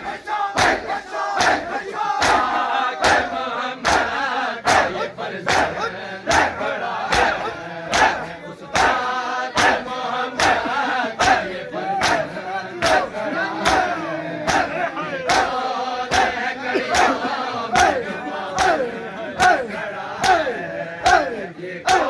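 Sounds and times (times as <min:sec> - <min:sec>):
crowd chanted shouts: 0:00.0 - 0:22.0
hands slapping chests: 0:00.6 - 0:19.6, 0:20.2 - 0:22.0.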